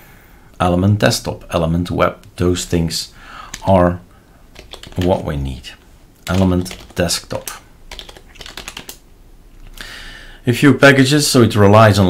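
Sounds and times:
soft hiss: 0.0s - 12.0s
keyboard keystrokes: 4.5s - 5.2s, 6.2s - 9.0s.

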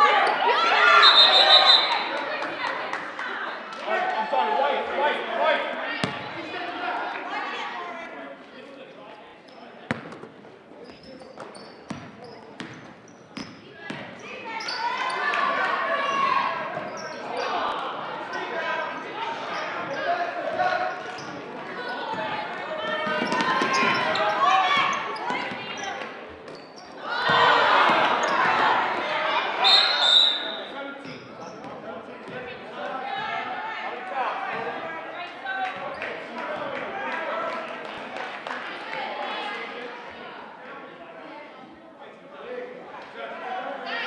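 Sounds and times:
referee's whistle blast: 0.9s - 2.0s, 29.6s - 30.7s.

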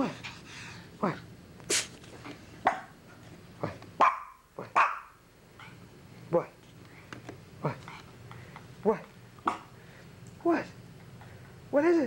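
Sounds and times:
small dog barking: 4.0s - 5.2s.

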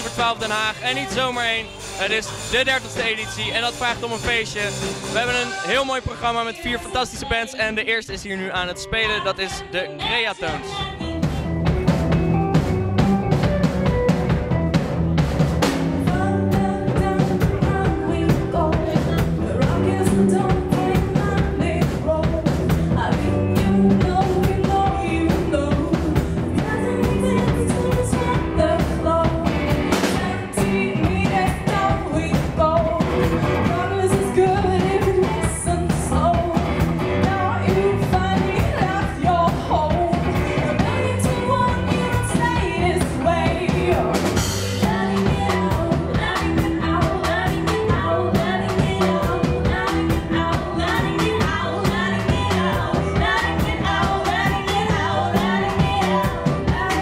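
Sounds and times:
woman singing lead: 0.0s - 4.3s, 5.1s - 13.2s, 15.6s - 57.0s
drum kit: 0.0s - 57.0s
electric guitar: 8.5s - 57.0s.

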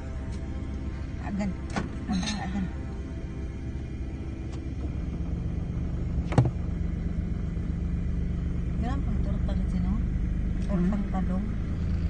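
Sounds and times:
car engine rumble inside cabin: 0.0s - 12.0s.

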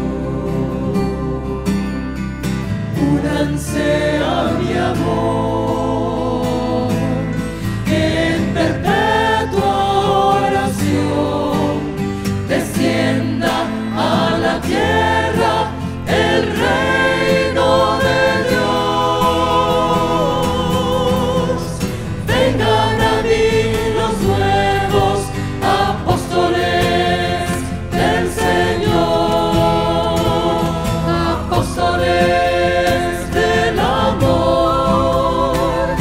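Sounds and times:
choir singing a hymn: 0.0s - 36.0s
low instrumental accompaniment: 0.0s - 36.0s.

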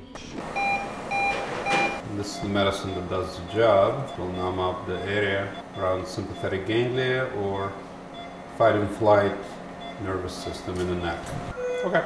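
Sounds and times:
room noise hum: 0.0s - 12.0s
short electronic beeps: 0.6s - 6.5s.

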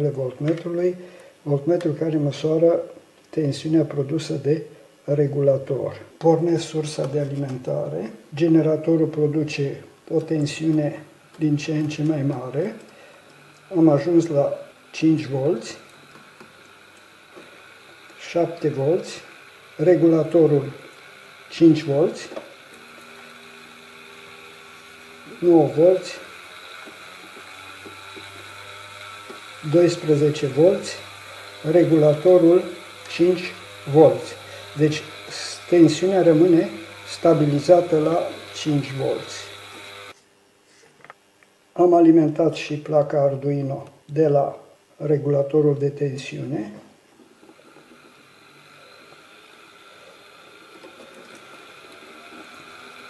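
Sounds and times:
light hiss: 0.0s - 41.6s, 45.8s - 53.0s
small electric motor whirring: 10.1s - 40.2s, 46.5s - 53.0s.

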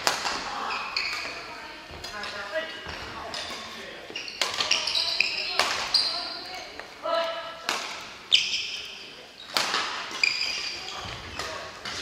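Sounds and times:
rackets striking shuttlecocks: 0.0s - 0.5s, 7.6s - 8.1s
shoes squeaking on wooden floor: 0.5s - 7.0s, 8.3s - 12.0s.

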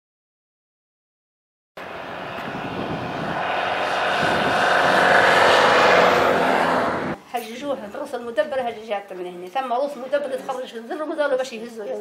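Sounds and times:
vehicle engine approaching: 1.8s - 7.2s.

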